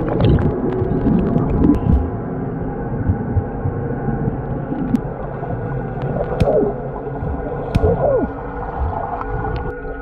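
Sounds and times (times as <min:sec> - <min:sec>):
underwater rumble: 0:00.0 - 0:10.0
sharp clicks underwater: 0:06.0 - 0:09.8.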